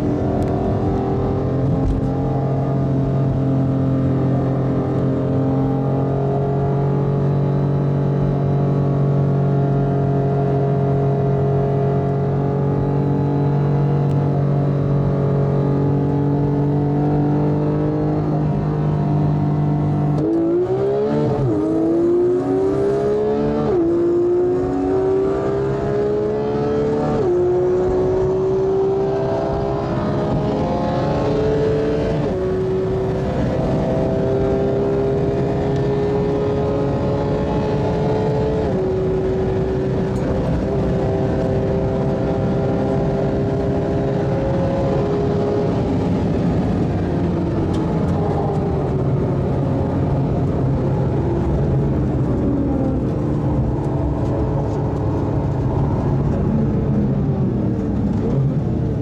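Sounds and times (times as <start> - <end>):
car engine accelerating: 0.0 - 59.0.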